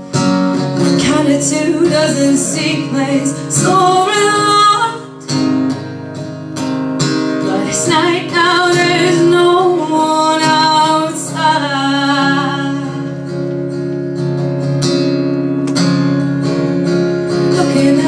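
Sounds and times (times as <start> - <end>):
acoustic guitar strumming: 0.0 - 18.0
woman singing: 0.8 - 5.8, 7.4 - 13.4, 17.3 - 18.0.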